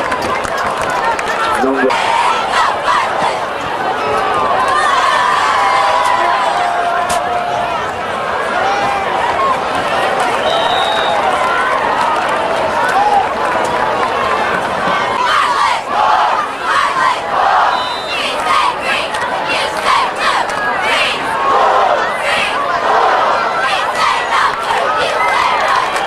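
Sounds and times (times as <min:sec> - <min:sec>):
crowd shouting: 0:00.0 - 0:26.0.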